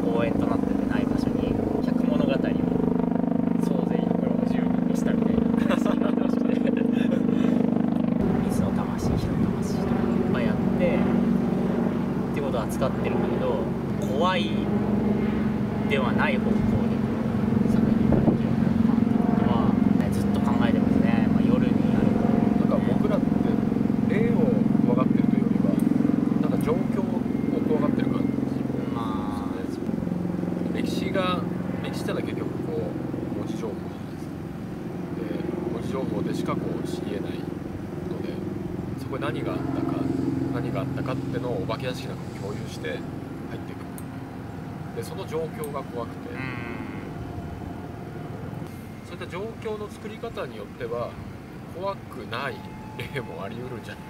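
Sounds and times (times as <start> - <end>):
men talking: 0.0 - 34.4, 35.0 - 44.2, 44.8 - 47.2, 48.6 - 54.0
low drone shifting pitch: 0.0 - 54.0.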